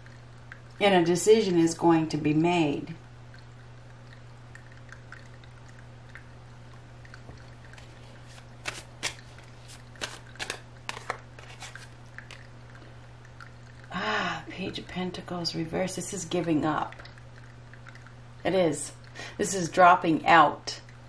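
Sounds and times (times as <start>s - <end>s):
steady low hum: 0.0s - 21.0s
cards shuffled by hand: 7.8s - 12.5s.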